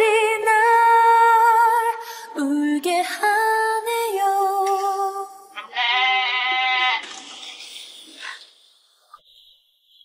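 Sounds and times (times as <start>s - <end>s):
woman singing with vibrato: 0.0s - 5.6s.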